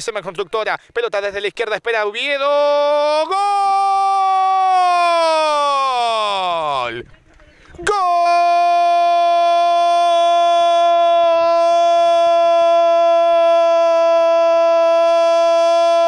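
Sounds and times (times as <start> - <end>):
man's long drawn-out shout: 2.5 - 6.9, 7.8 - 16.0.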